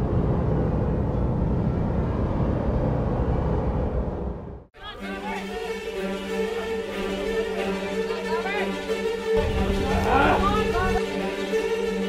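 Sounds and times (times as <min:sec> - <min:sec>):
low rumble: 0:00.0 - 0:04.7, 0:09.4 - 0:11.0.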